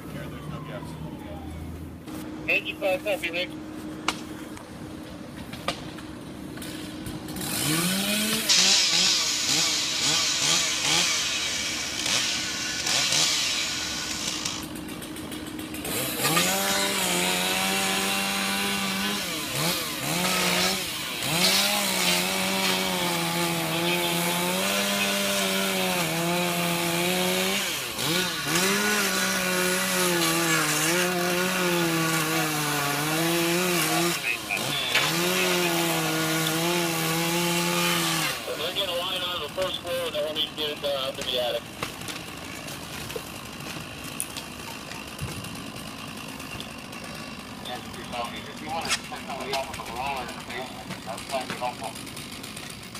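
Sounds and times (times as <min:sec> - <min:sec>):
chainsaw cutting through roof: 0:05.7 - 0:52.9.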